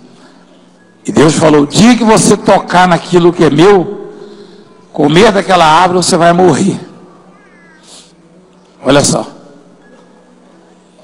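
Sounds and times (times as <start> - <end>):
man speaking: 1.0 - 4.2, 4.9 - 7.0, 8.8 - 9.5.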